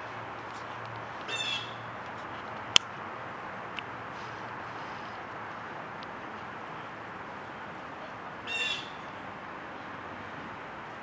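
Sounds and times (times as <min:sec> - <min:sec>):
high bird call: 0:01.3 - 0:01.8, 0:08.5 - 0:09.1.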